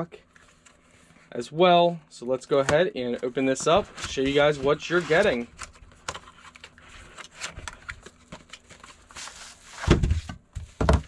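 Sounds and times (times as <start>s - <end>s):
cardboard and plastic rustling: 2.6s - 11.0s.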